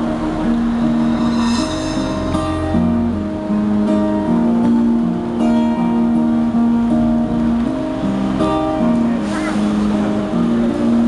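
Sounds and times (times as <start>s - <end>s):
strummed acoustic guitar: 0.0s - 11.0s.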